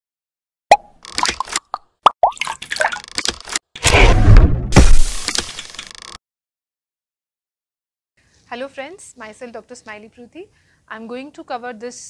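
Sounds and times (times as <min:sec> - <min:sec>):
watery plops and clicks: 0:00.7 - 0:03.4.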